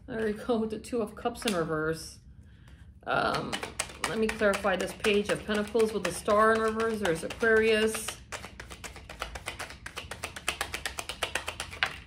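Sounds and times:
cards being shuffled: 3.3s - 12.0s.

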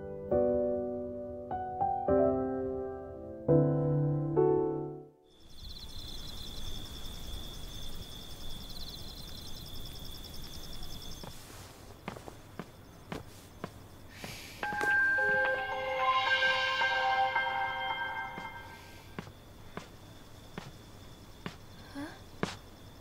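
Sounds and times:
high insect trill: 5.3s - 23.0s
soft footsteps: 11.2s - 15.8s, 18.1s - 23.0s.

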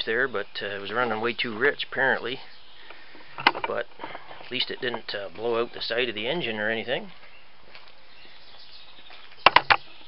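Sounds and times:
faint outdoor background: 0.0s - 10.0s.

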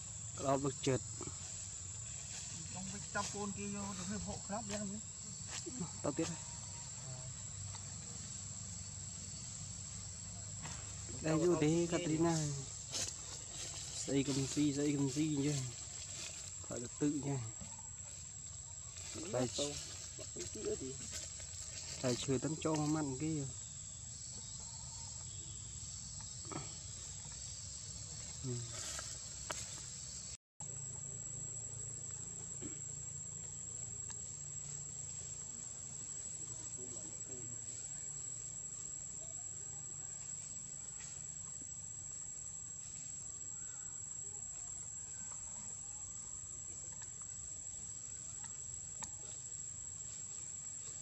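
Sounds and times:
high-pitched insect drone: 0.0s - 51.0s
man speaking: 0.4s - 1.3s, 11.1s - 12.7s, 14.0s - 15.7s, 16.7s - 17.6s, 19.2s - 21.1s, 22.0s - 23.5s, 28.4s - 28.8s.

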